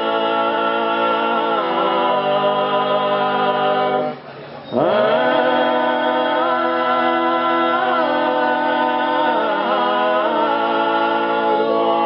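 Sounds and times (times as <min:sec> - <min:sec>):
male vocal group singing chords: 0:00.0 - 0:12.0.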